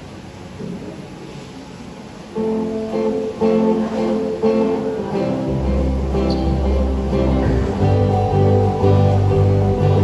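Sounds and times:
acoustic guitar strumming chords: 2.4 - 10.0
deep steady low sound: 5.4 - 10.0.

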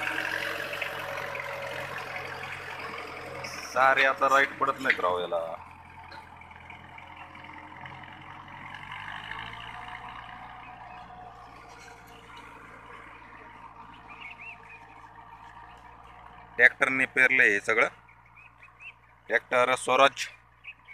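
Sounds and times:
tractor diesel engine running: 0.0 - 20.9
bird chirp: 10.3 - 20.9.

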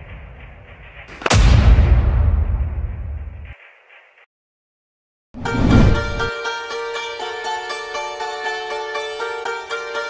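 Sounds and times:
rising whoosh: 5.4 - 6.3.

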